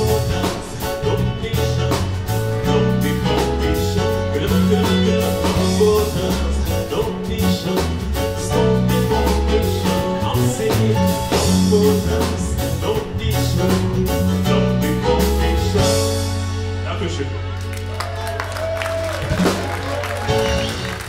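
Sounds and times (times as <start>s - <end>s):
lead singer: 0.0s - 16.6s
live band playing: 0.0s - 21.0s.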